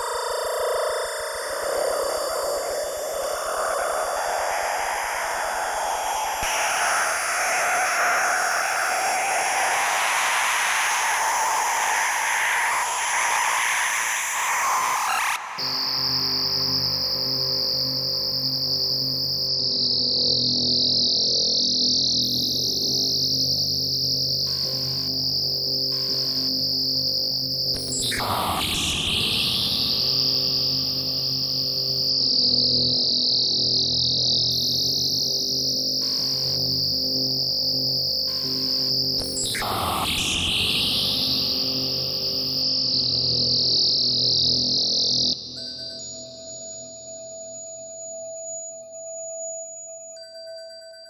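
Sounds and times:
hiss: 0:00.0 - 0:19.3
low sustained tones: 0:00.0 - 0:45.8
shrill high electronic tone: 0:03.2 - 0:47.1.

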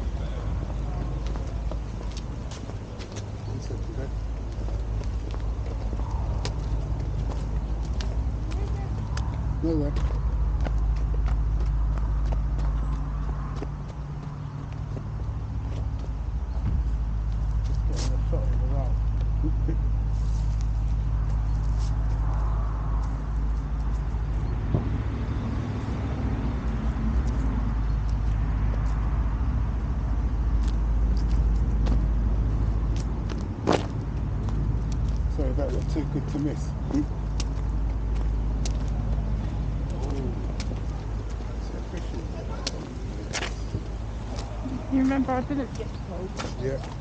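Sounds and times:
steady low rumble: 0:00.0 - 0:47.0
footsteps on pine needles: 0:20.1 - 0:24.3.

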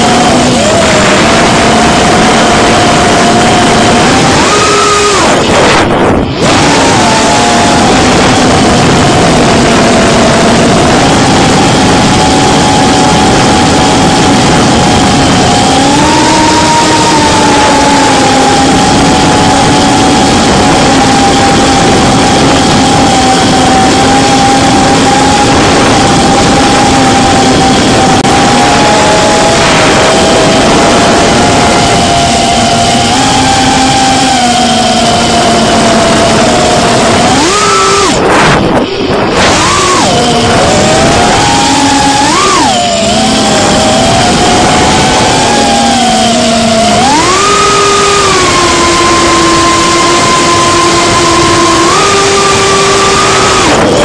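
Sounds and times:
drone motors buzzing whine: 0:00.0 - 0:54.0.

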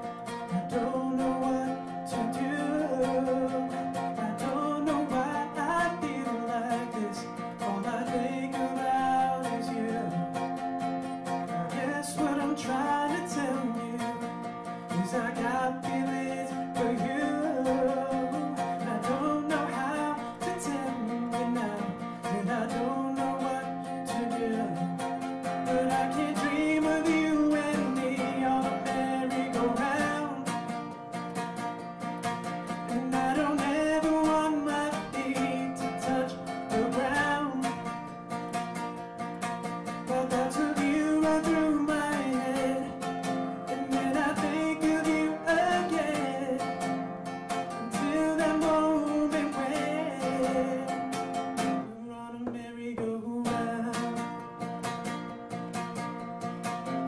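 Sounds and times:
man singing: 0:00.0 - 0:31.4, 0:32.2 - 0:38.5, 0:39.4 - 0:55.8
acoustic guitar strumming: 0:00.0 - 0:57.0.

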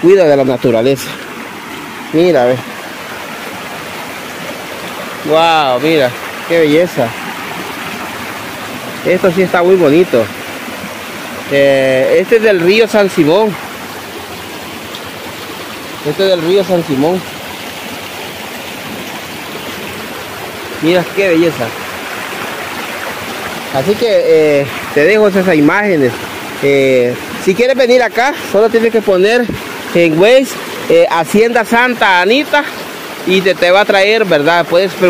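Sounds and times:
river rushing over rocks: 0:00.0 - 0:35.0.

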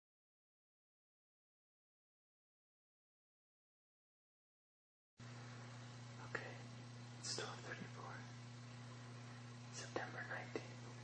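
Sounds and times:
low electrical hum: 0:05.2 - 0:11.0
person whispering: 0:06.2 - 0:08.4, 0:09.7 - 0:10.9.

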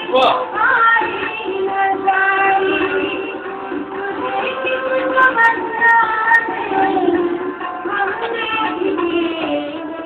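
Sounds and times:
music: 0:00.0 - 0:10.0.

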